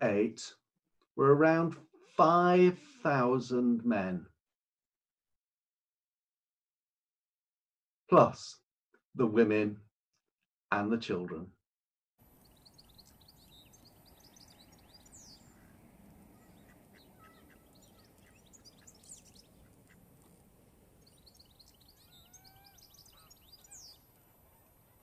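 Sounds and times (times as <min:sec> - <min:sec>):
small birds chirping: 0:12.2 - 0:25.0
lower bird calls: 0:12.3 - 0:25.0.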